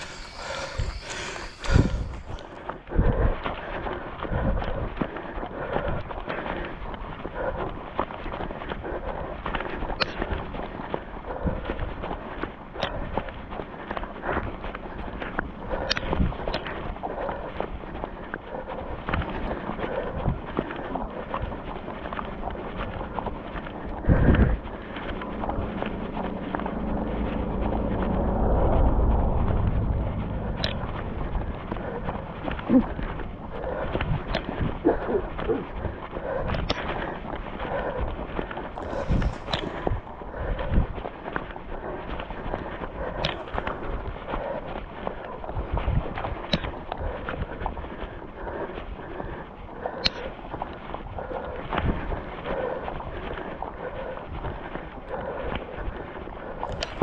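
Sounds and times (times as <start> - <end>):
footsteps on pavement: 0.0 - 57.0
wind rumbling on microphone: 0.0 - 57.0.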